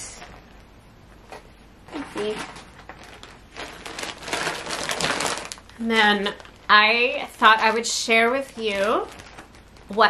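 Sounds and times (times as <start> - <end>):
rustling and crinkling: 0.0 - 10.0.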